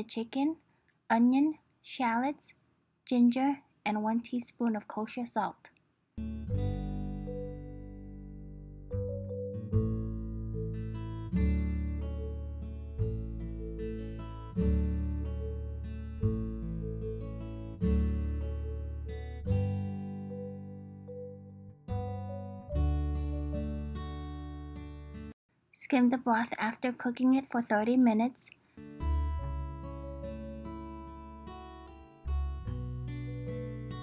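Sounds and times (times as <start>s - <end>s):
plucked acoustic guitar music: 6.2s - 25.3s, 28.8s - 34.0s.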